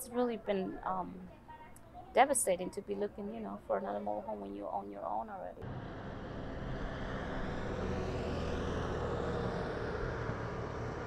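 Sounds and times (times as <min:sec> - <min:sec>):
distant motor rumble: 0:00.0 - 0:11.0
low hum: 0:05.6 - 0:11.0.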